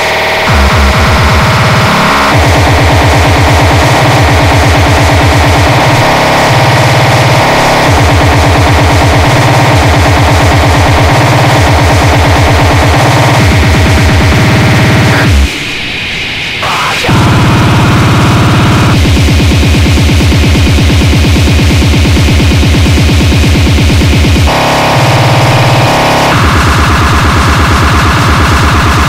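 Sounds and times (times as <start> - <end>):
noisy synth layer: 0.0 - 29.0
rapid kick drum: 0.5 - 15.6, 16.6 - 29.0.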